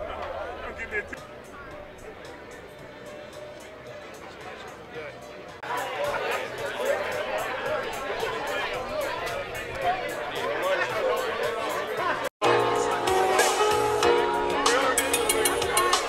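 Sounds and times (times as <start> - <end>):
background music: 0.0 - 16.0
many people talking: 0.0 - 16.0
music with held notes: 0.0 - 16.0.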